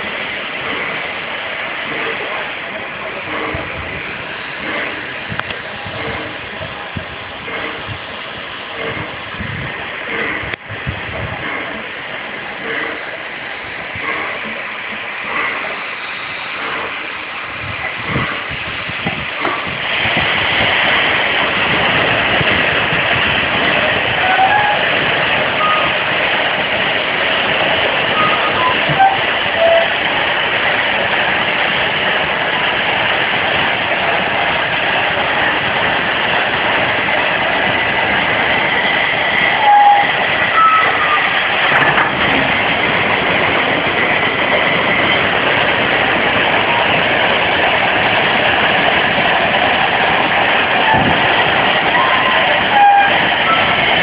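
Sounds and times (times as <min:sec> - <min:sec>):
compressed air hissing rush: 0:00.0 - 0:54.0.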